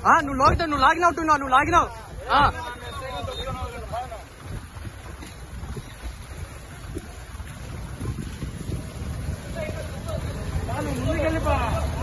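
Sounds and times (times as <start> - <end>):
floodwater sloshing and splashing: 0.0 - 12.0
wind rumbling on microphone: 0.0 - 12.0.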